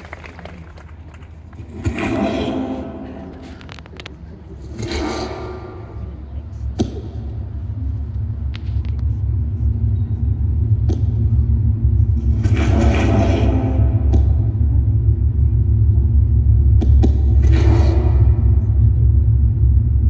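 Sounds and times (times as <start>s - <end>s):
deep low rumbling drone: 0.0s - 20.0s.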